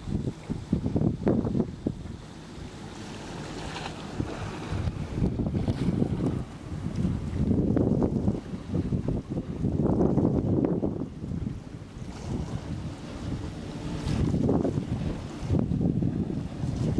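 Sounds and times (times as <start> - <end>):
wind buffeting microphone: 0.0 - 16.9.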